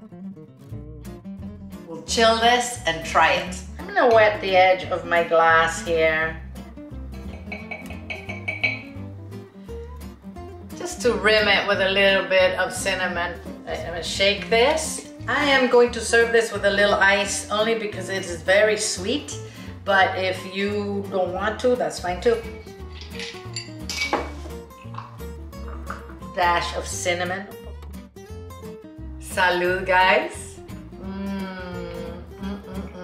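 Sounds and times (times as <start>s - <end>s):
light background music: 0.0s - 33.0s
plucked guitar notes: 6.8s - 9.4s
bass line: 24.6s - 33.0s.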